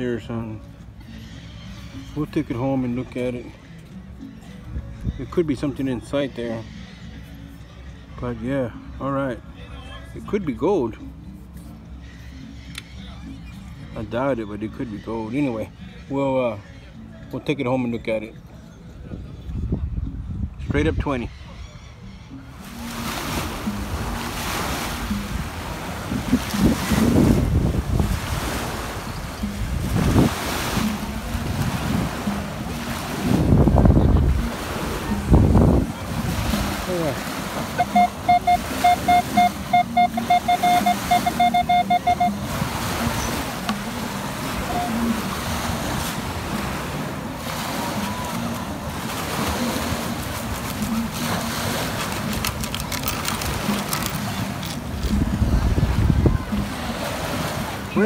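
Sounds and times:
surf: 0:22.3 - 0:58.0
wind noise: 0:23.0 - 0:37.0, 0:52.2 - 0:56.8
metal detector short beeps: 0:37.8 - 0:42.4.

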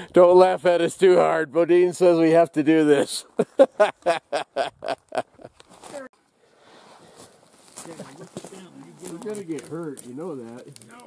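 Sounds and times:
faint outdoor background noise: 0:00.0 - 0:11.0
man laughing: 0:03.0 - 0:05.6.

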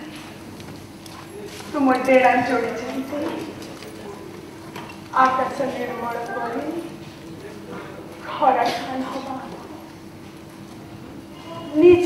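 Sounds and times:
woman reciting verse: 0:05.2 - 0:06.8.

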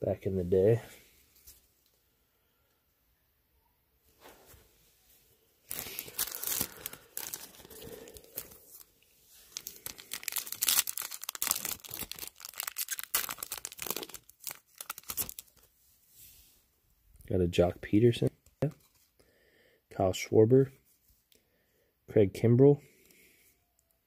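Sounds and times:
plastic wrapper tearing and crinkling: 0:05.7 - 0:15.7.

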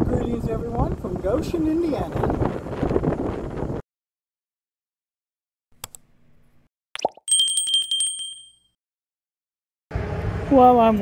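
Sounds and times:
bright bell ding: 0:07.3 - 0:08.7.

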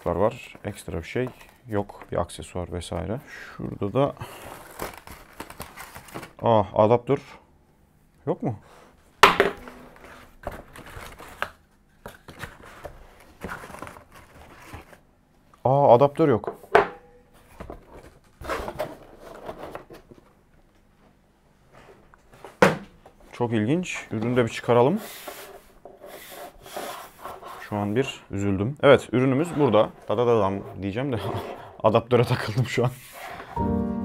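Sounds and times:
cardboard packaging rustling: 0:04.2 - 0:06.4, 0:09.6 - 0:15.1, 0:17.4 - 0:20.3.

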